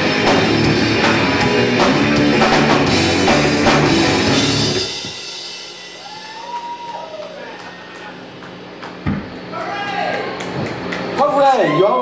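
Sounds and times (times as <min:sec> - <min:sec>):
live rock band: 0:00.0 - 0:06.8
guitar amplifier humming: 0:00.0 - 0:12.0
thump: 0:09.0 - 0:09.3.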